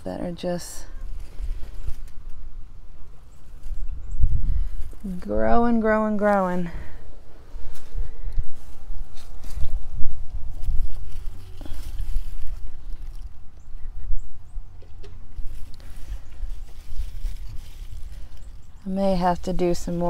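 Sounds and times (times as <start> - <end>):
rustling of plant leaves: 0.0 - 20.0
low rumble on microphone: 0.8 - 20.0.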